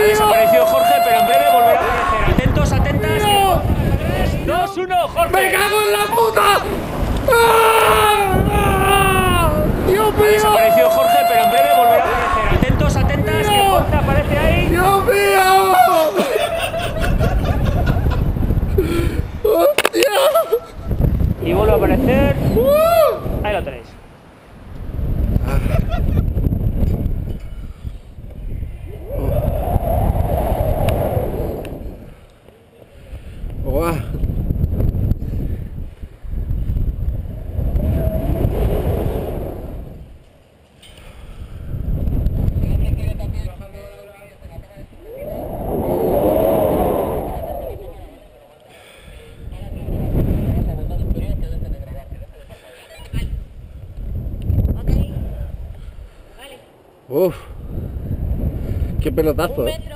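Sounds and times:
wind rushing over microphone: 0:00.0 - 0:19.7, 0:20.6 - 0:32.3, 0:33.0 - 0:40.4, 0:41.1 - 0:59.9.

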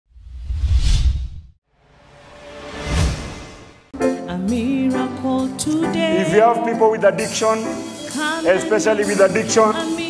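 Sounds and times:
swoosh sound effect: 0:00.2 - 0:03.9.

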